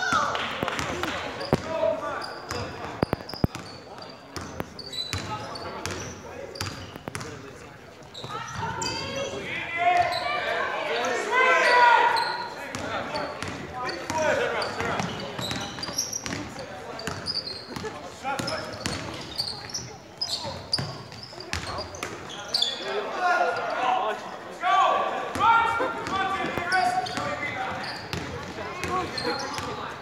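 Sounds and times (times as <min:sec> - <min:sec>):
sneakers squeaking: 0:00.0 - 0:23.8, 0:25.3 - 0:30.0.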